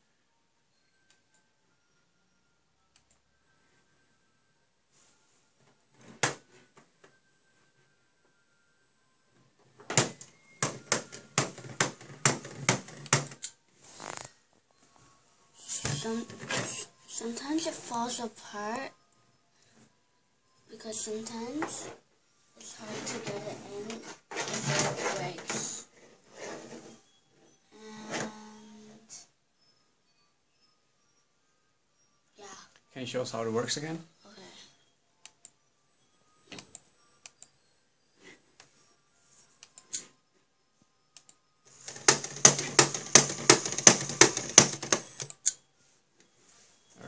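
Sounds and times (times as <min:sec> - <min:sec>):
plastic hammer clacks: 0:41.9 - 0:45.4.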